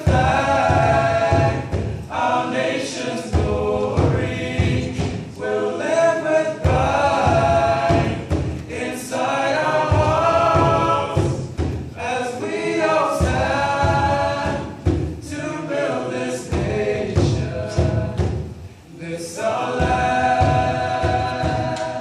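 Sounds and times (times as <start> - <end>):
a cappella group singing in harmony: 0.0 - 22.0.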